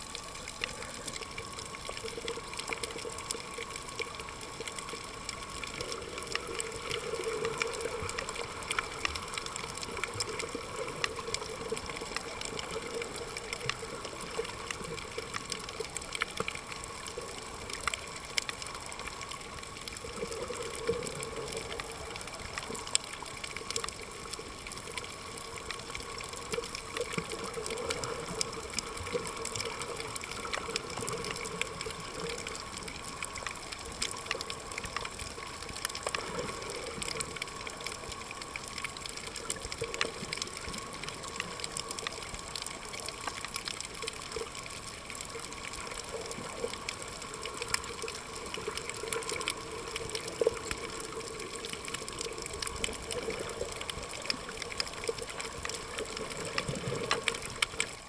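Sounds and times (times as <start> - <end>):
underwater rush of water: 0.0 - 58.0.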